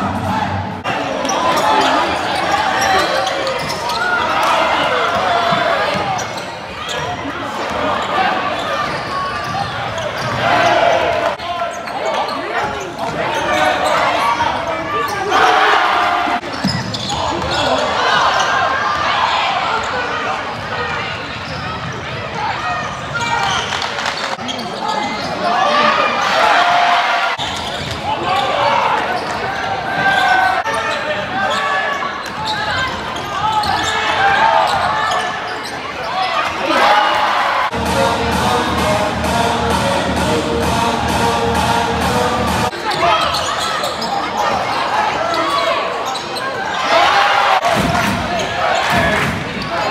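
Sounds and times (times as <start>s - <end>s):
crowd voices talking and calling: 0.0s - 49.9s.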